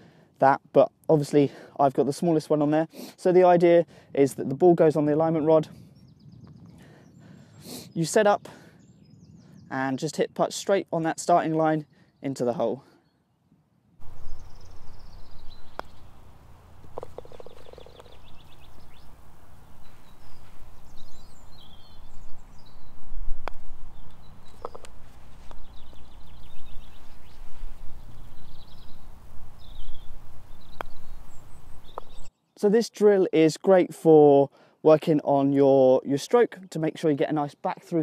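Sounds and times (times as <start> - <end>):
birds singing: 4.4 - 33.2
wind rumble on microphone: 5.6 - 9.8, 13.8 - 32.3
putter striking golf ball: 15.6 - 18.6.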